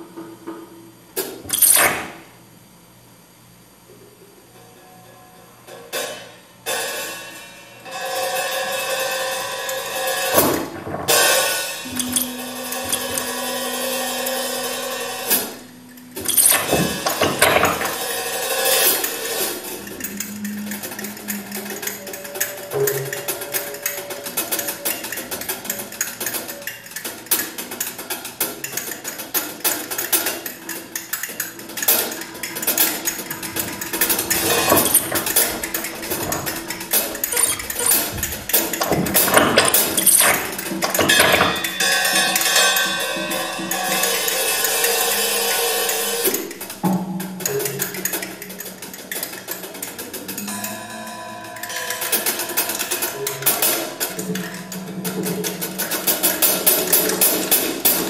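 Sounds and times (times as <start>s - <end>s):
clattering tapping percussion: 8.8s - 58.0s
held musical tones: 11.1s - 27.3s, 30.4s - 46.8s.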